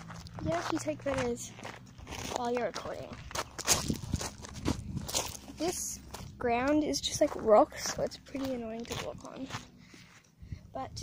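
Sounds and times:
footsteps on gravel: 0:00.0 - 0:10.4.

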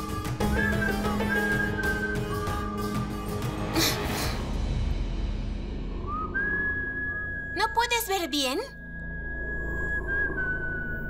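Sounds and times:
noisy whoosh: 0:04.1 - 0:07.6
steady high-pitched tone: 0:06.2 - 0:11.0
woman's voice: 0:07.6 - 0:08.8.

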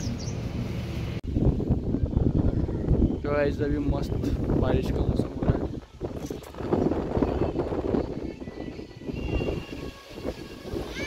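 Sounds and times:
gusty wind on microphone: 0:01.2 - 0:11.0.

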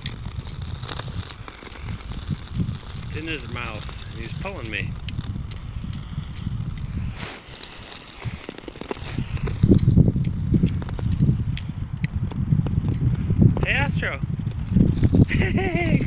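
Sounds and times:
sharp clicks: 0:00.0 - 0:15.4
skate blades gliding on ice: 0:00.0 - 0:16.0.

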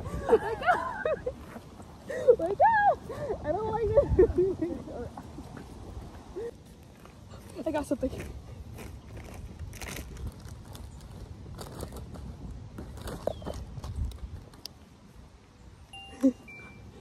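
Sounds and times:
wind rumble on microphone: 0:00.0 - 0:06.5, 0:08.1 - 0:15.4.

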